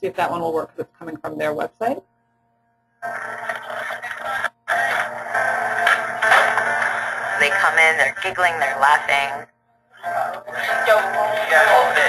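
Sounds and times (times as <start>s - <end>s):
steady hum: 0.0s - 12.0s
distorted video soundtrack: 3.0s - 12.0s.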